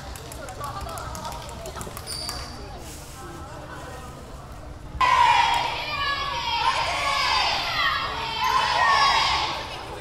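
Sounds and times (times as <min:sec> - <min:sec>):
indistinct chatter echoing: 0:05.0 - 0:10.0.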